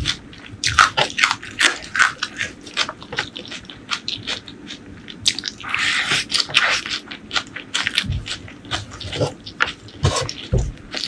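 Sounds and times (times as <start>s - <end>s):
crunching and chewing fried food: 0.0s - 11.0s.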